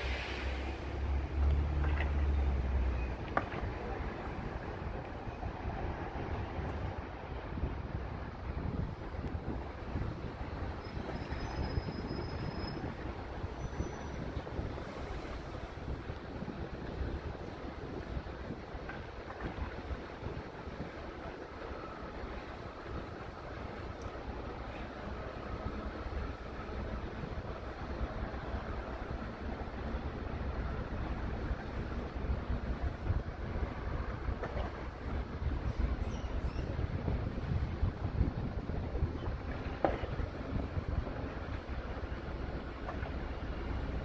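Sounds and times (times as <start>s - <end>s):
distant freight train rumble: 0.0s - 44.0s
wind noise on microphone: 0.0s - 44.0s.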